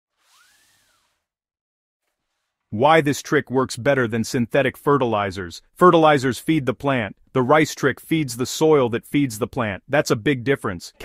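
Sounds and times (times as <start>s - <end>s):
faint whoosh: 0.1s - 1.4s.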